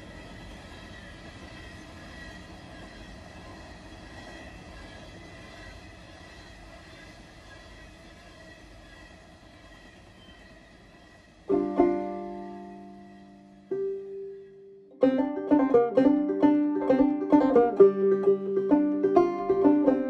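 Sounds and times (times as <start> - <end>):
freight train rumbling past: 0.0 - 20.0
banjo chord: 11.5 - 20.0.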